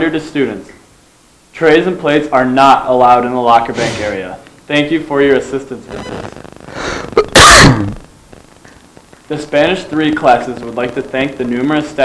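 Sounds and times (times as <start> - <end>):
person sneezing: 3.8 - 4.2, 6.8 - 8.0.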